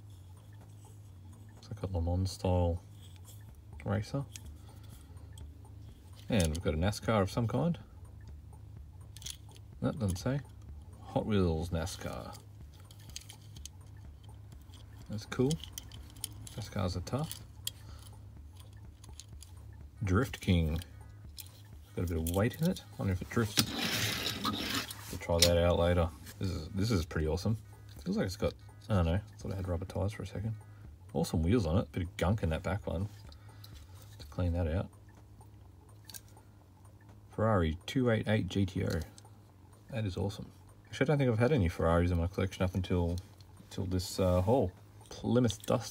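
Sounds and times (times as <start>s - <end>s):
low steady hum: 0.0s - 45.9s
toy car handling noise: 23.5s - 25.5s.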